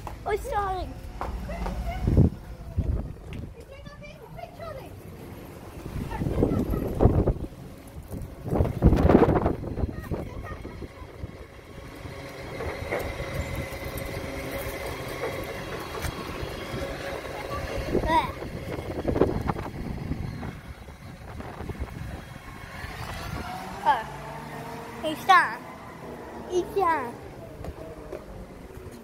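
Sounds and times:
garbage truck engine whining: 0.0s - 29.0s
children's voices: 0.2s - 12.4s, 15.4s - 20.1s, 22.8s - 28.1s.

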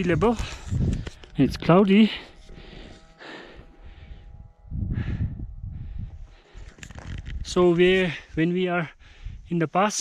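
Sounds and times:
wind rumble on microphone: 0.0s - 1.7s, 2.5s - 9.6s
person breathing hard: 2.2s - 7.0s, 9.0s - 9.5s.

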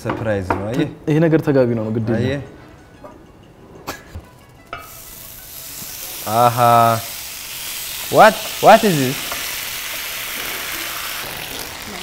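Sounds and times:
sauce sizzling on hot platter: 4.7s - 12.0s.

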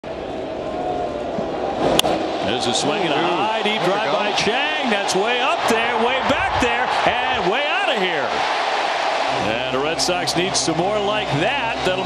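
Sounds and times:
crowd murmuring: 2.4s - 8.4s.

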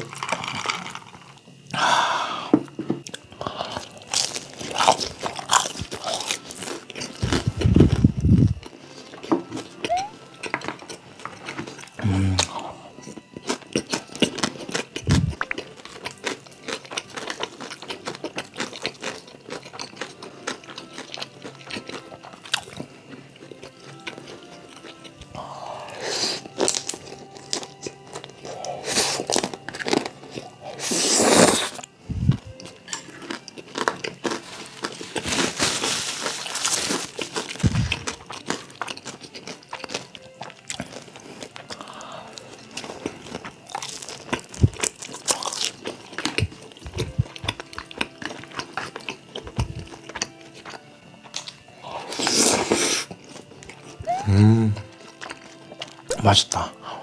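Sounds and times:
crunching and chewing: 0.0s - 1.8s, 2.5s - 57.0s
soft background music: 0.0s - 57.0s
noodles being slurped: 28.4s - 31.9s, 51.9s - 56.0s.

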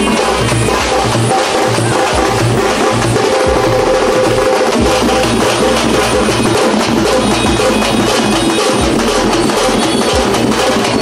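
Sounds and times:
bass drums beating: 0.0s - 11.0s
held melodic line: 0.0s - 11.0s.

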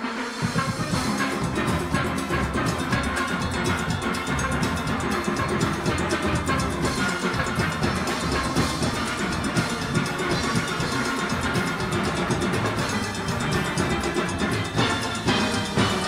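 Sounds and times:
drum kit and percussion: 0.0s - 16.0s
steelpans playing: 0.1s - 16.0s.

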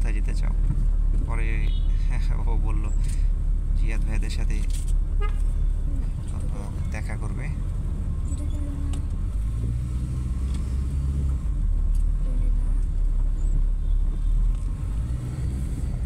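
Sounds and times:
car engine and tyres rumbling: 0.0s - 16.0s.

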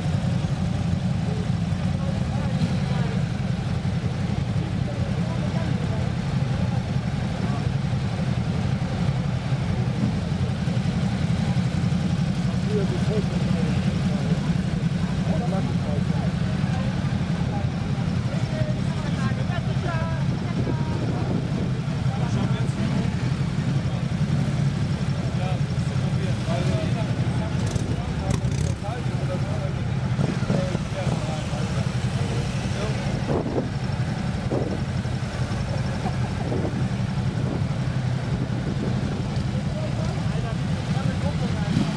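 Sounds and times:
motorcycle engines idling: 0.0s - 41.9s
people talking indistinctly: 0.0s - 41.9s.

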